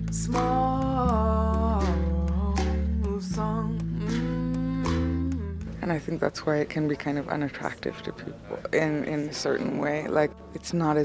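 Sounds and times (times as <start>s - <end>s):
low bass notes: 0.0s - 6.2s
plucked acoustic guitar: 0.0s - 6.2s
woman singing: 0.0s - 11.0s.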